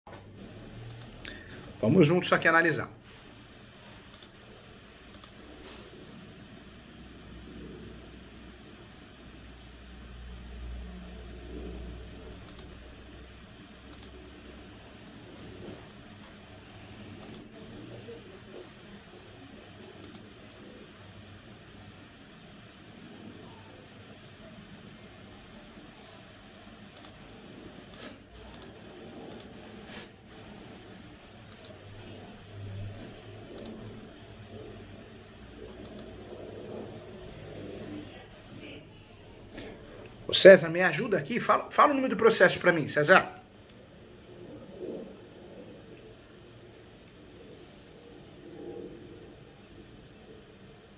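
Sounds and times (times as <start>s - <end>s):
faint hum: 0.1s - 50.9s
computer mouse clicks: 0.7s - 1.4s, 3.9s - 6.3s, 10.0s - 21.2s, 26.9s - 38.2s.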